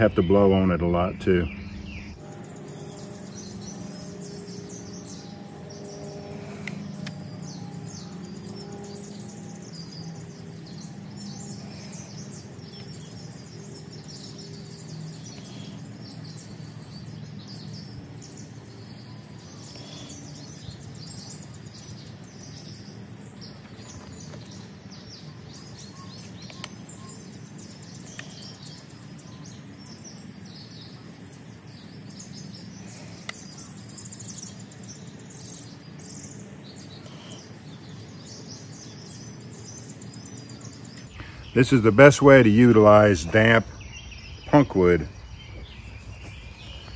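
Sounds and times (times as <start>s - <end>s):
small birds chirping: 0.0s - 46.9s
steady low hum: 0.0s - 46.9s.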